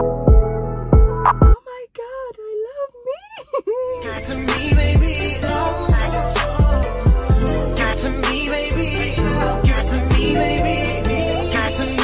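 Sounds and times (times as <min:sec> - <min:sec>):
woman wailing: 0:01.6 - 0:04.1.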